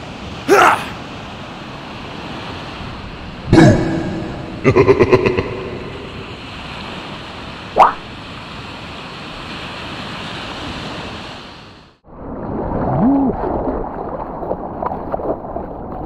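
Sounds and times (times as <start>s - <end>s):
water sloshing and splashing: 12.1s - 16.0s.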